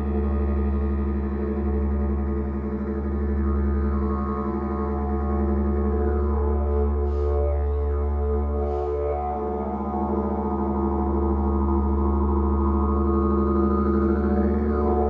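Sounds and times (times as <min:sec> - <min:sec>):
didgeridoo drone: 0:00.0 - 0:15.0.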